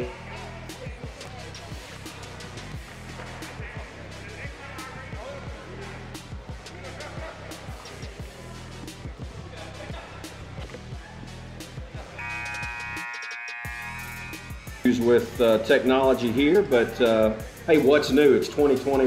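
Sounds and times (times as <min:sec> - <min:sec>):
music: 0:00.0 - 0:19.0
voices: 0:00.0 - 0:19.0.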